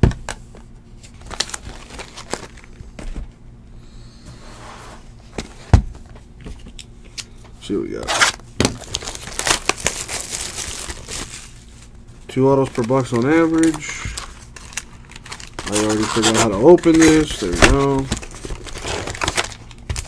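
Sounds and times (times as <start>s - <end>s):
plastic wrapper crinkling and tearing: 1.0s - 2.8s, 8.1s - 11.8s, 12.5s - 20.0s.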